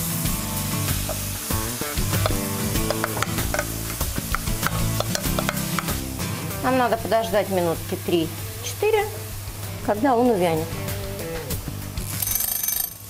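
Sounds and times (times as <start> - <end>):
spinach sizzling in frying pan: 0.0 - 10.8
background music: 0.0 - 13.0.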